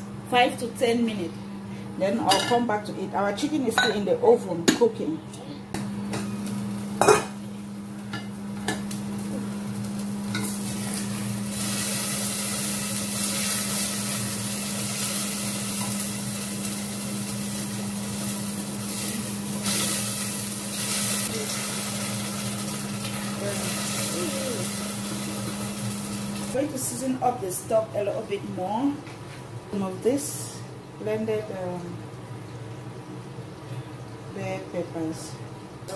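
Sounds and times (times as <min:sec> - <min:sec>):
sauce sizzling: 0:06.3 - 0:26.7.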